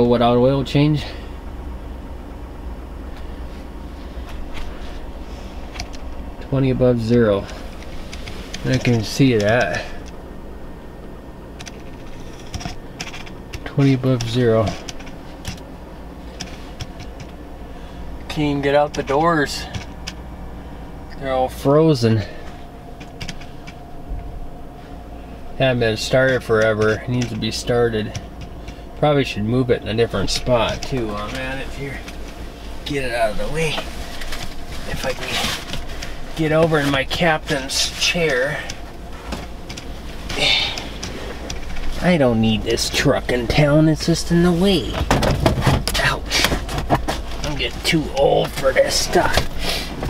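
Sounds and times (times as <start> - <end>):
engine idling low rumble: 0.0 - 50.0
clothing and seat rustling: 3.1 - 10.2, 11.6 - 20.8, 22.0 - 29.0, 29.9 - 50.0.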